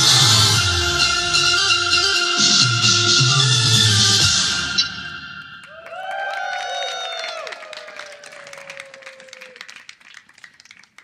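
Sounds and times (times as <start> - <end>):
applause: 5.6 - 11.0.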